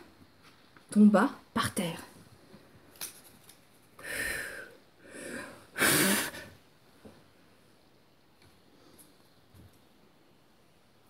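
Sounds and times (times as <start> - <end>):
breathy puffs of air: 4.0 - 6.6.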